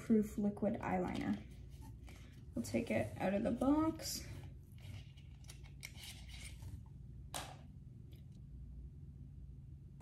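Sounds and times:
handling small product box: 0:04.4 - 0:06.8.

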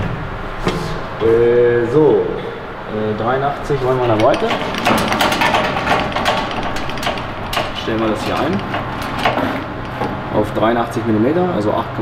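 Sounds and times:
metallic clicking of handwheel: 0:03.9 - 0:10.1.

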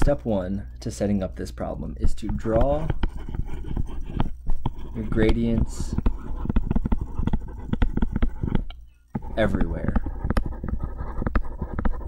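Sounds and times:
stylus tapping on tablet screen: 0:02.0 - 0:12.0.

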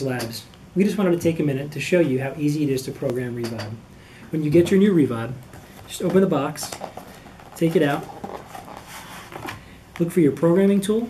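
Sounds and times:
cardboard box rubbing and scraping: 0:07.9 - 0:09.5.

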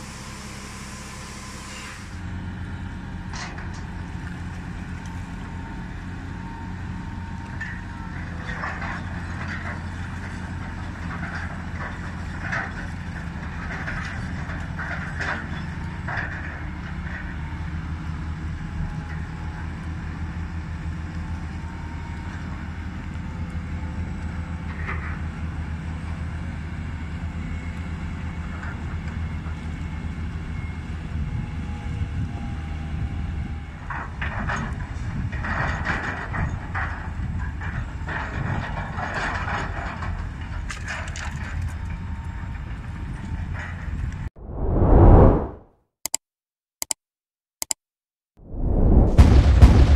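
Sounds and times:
crane engine running: 0:00.0 - 0:13.6.

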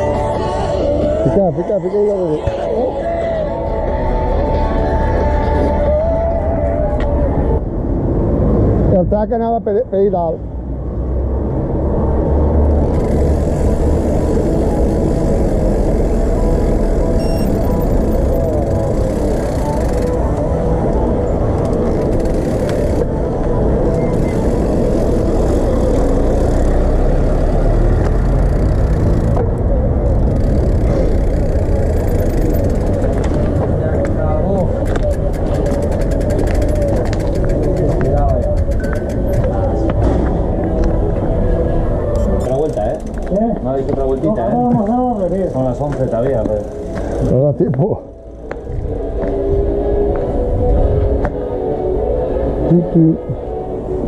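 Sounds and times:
bike tyre noise: 0:12.1 - 0:47.4
freewheel clicking: 0:34.8 - 0:39.5.

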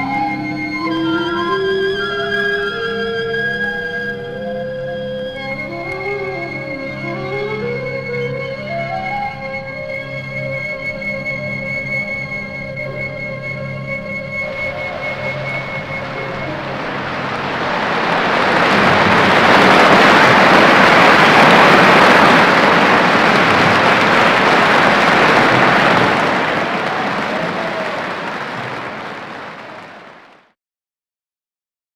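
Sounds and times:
audience applauding: 0:00.0 - 0:30.6
orchestra held note: 0:12.4 - 0:30.1.

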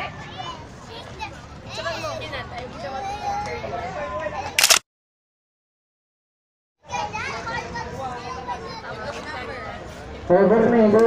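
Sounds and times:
lively voices and chatter: 0:00.0 - 0:04.8, 0:06.8 - 0:11.0.

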